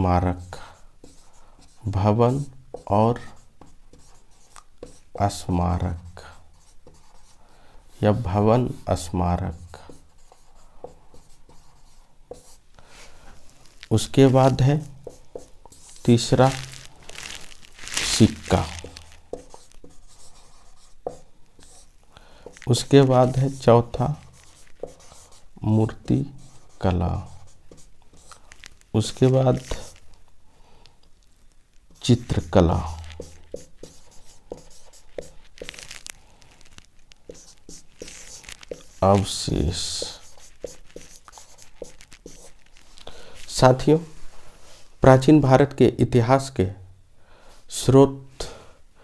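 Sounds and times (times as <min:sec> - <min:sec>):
marker writing on whiteboard: 0:00.0 - 0:07.4, 0:08.0 - 0:12.6, 0:13.9 - 0:16.8, 0:18.5 - 0:28.5, 0:29.1 - 0:30.0, 0:31.9 - 0:35.9, 0:37.2 - 0:43.0.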